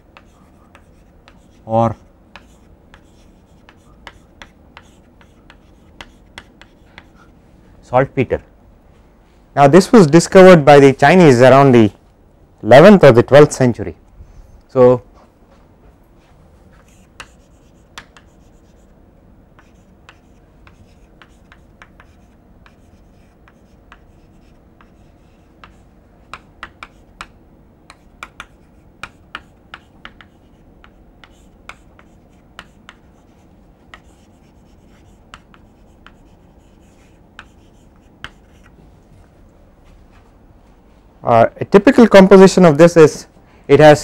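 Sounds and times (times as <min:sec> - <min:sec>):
faint room noise: 0:00.0 - 0:44.0
chalk writing on a blackboard: 0:00.1 - 0:07.4, 0:16.7 - 0:19.0, 0:19.6 - 0:27.3, 0:27.9 - 0:38.8.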